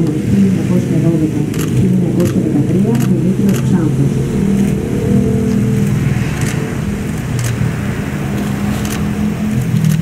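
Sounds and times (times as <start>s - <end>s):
sharp ticks: 5.5s - 7.6s.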